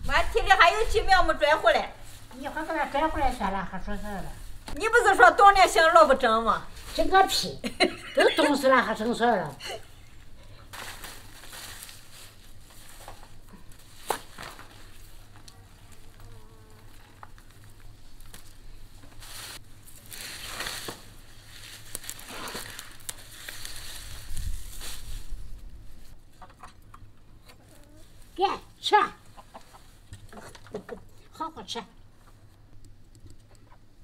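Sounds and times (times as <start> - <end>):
leafy greens rustling: 0.0 - 26.4.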